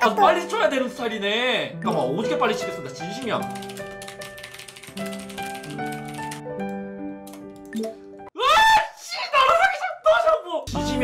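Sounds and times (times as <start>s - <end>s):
rapid typing on keyboard: 2.5s - 7.7s.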